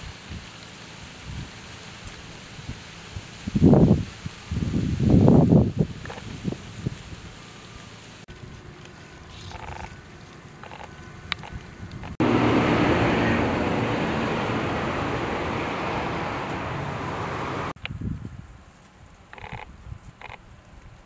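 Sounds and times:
loud steady rushing noise: 0:10.7 - 0:17.8.

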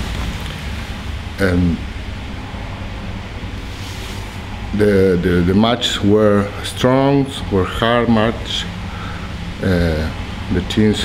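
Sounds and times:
even hiss: 0:00.0 - 0:02.0, 0:03.4 - 0:11.0
low background rumble: 0:00.0 - 0:11.0.

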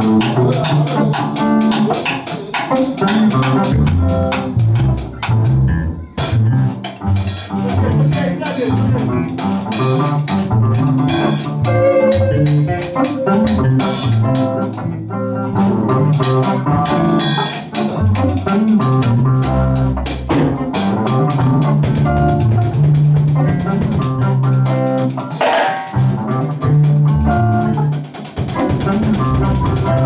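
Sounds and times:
drum kit: 0:00.0 - 0:30.0
electric bass guitar: 0:00.0 - 0:30.0
electric guitar: 0:00.0 - 0:30.0.

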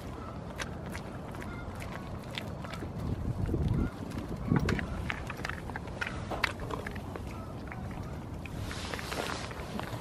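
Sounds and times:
goat chewing food: 0:00.0 - 0:10.0
wind buffeting microphone: 0:00.0 - 0:10.0.

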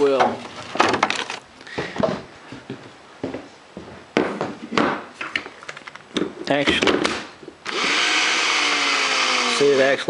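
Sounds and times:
plastic knocks and rustles: 0:00.1 - 0:02.8.

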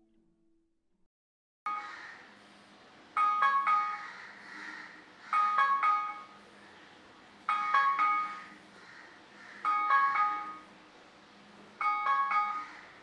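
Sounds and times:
phone ringtone chiming: 0:03.2 - 0:04.1, 0:05.3 - 0:06.5, 0:07.4 - 0:08.7, 0:09.6 - 0:10.8, 0:11.8 - 0:13.0.

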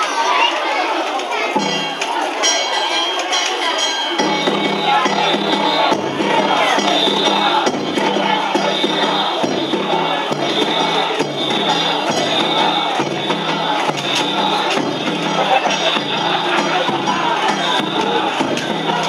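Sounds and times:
crowd shouting: 0:00.0 - 0:19.0
festival drums and hand gongs: 0:00.0 - 0:19.0.

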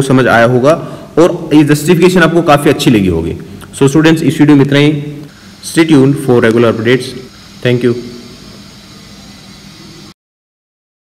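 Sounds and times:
faint hum: 0:00.0 - 0:10.2
microphone hiss: 0:00.0 - 0:10.2.

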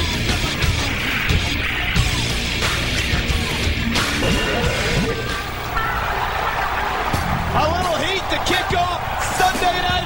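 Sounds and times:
hard rock music: 0:00.0 - 0:10.0
arena crowd cheering and yelling: 0:03.9 - 0:10.0.

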